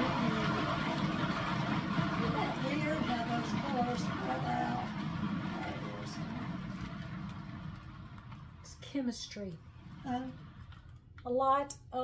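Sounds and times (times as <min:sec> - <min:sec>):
spinner motor running: 0:00.0 - 0:11.0.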